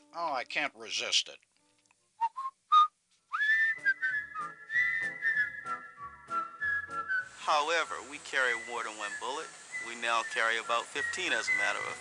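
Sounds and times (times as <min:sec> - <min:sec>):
person whistling a tune: 0:02.2 - 0:12.0.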